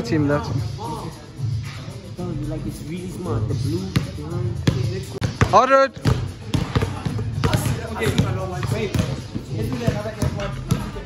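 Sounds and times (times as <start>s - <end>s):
hip hop track with rapping: 0.0s - 11.0s
heavy bass beat: 3.4s - 11.0s.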